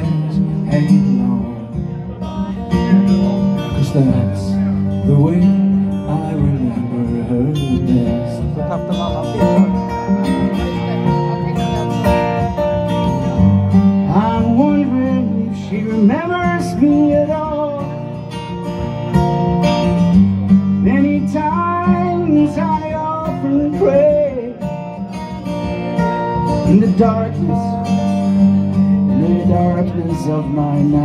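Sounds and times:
acoustic guitars playing folk song: 0.0 - 31.0.

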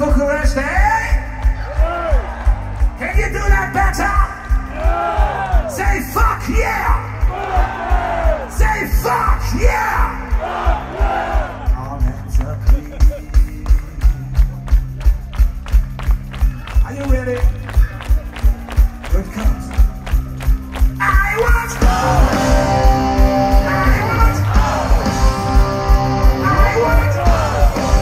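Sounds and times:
crowd singing along: 10.4 - 11.6, 21.7 - 28.0
metal band playing live: 18.2 - 28.0.

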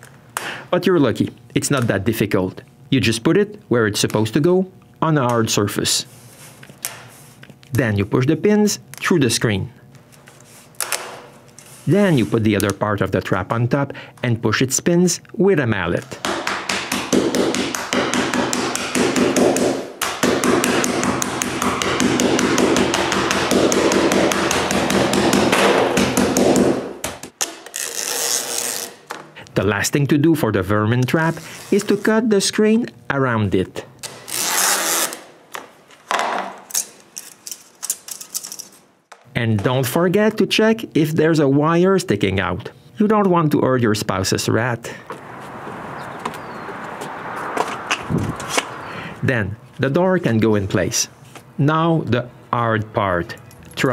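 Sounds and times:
birds calling: 45.2 - 49.1
low bird call: 45.9 - 46.8.

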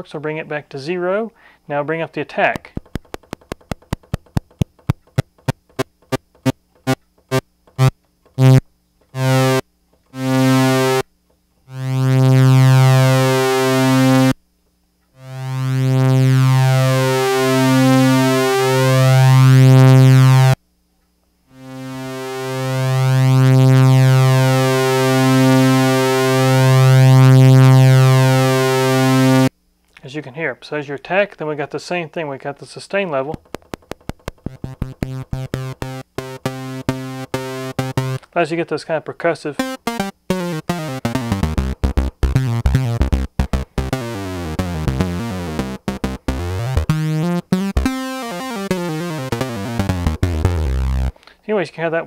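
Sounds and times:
synthesizer low note: 9.2 - 9.6, 10.2 - 11.0, 34.3 - 38.2, 39.6 - 51.1.

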